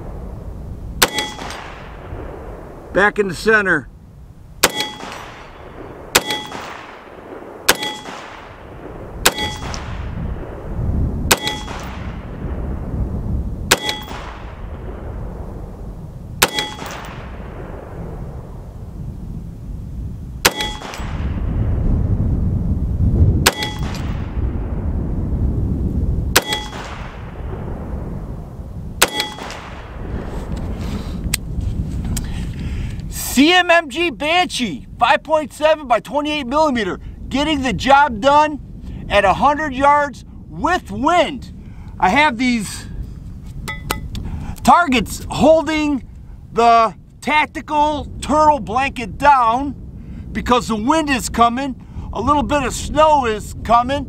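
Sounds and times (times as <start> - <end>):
wind rumble on microphone: 0.0 - 54.0
steel target ringing: 1.0 - 1.8, 4.6 - 6.8, 7.7 - 8.3, 9.2 - 9.8, 11.3 - 12.0, 13.7 - 14.3, 16.4 - 17.2, 20.5 - 21.2, 23.5 - 24.3, 26.4 - 26.9, 29.0 - 29.6
pistol shots: 1.0 - 2.4, 4.6 - 10.1, 11.3 - 12.2, 13.7 - 14.6, 16.4 - 17.4, 20.4 - 21.3, 23.4 - 24.4, 26.3 - 27.3, 29.0 - 30.0.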